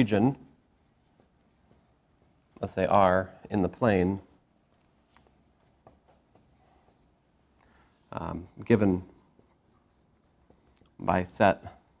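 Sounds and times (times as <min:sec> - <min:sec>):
marker writing on whiteboard: 0:00.0 - 0:02.8, 0:05.2 - 0:07.2, 0:08.6 - 0:12.0.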